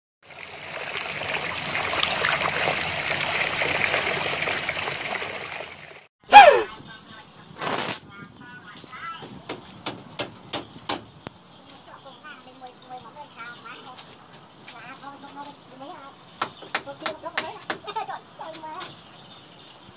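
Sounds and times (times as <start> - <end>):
water trickling and splashing: 0.2 - 6.1.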